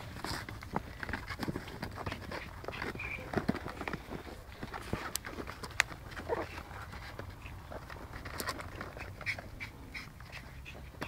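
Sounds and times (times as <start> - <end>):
puppies squeaking: 1.4 - 4.0, 6.2 - 11.0
puppies whimpering: 6.2 - 7.9.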